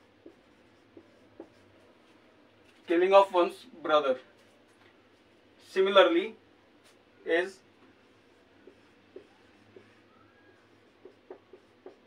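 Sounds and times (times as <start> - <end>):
marker writing on a whiteboard: 0.0 - 3.1, 4.1 - 12.0.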